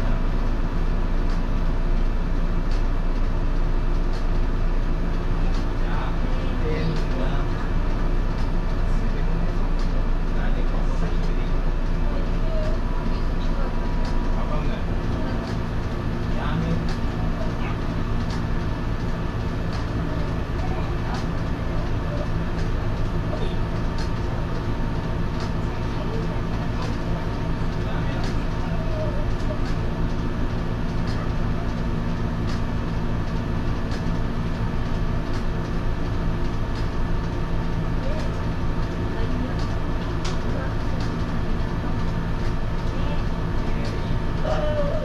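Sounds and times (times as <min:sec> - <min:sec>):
electric railcar humming: 0:00.0 - 0:45.0.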